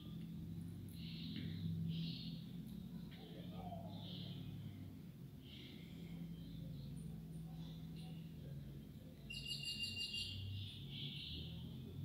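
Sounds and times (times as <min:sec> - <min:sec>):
bird chirping: 0:00.0 - 0:04.6, 0:09.2 - 0:11.9.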